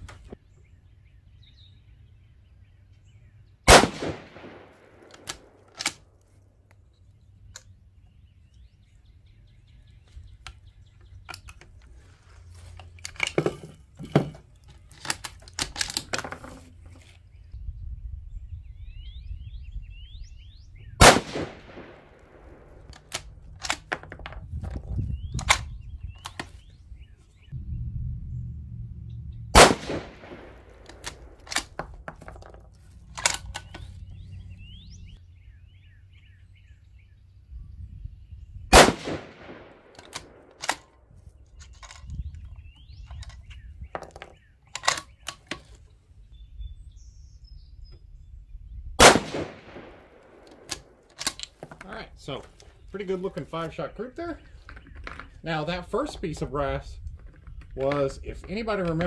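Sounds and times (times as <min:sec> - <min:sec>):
rifle shots with ringing echo: 0:03.7 - 0:06.0, 0:21.0 - 0:23.8, 0:29.5 - 0:31.8, 0:38.7 - 0:40.9, 0:49.0 - 0:51.3
rifle bolt clicks and clacks: 0:04.0 - 0:06.3, 0:10.4 - 0:11.9, 0:14.3 - 0:17.1, 0:21.2 - 0:26.5, 0:29.6 - 0:33.9, 0:39.0 - 0:41.0, 0:41.6 - 0:45.8, 0:49.0 - 0:51.9, 0:56.1 - 0:59.0.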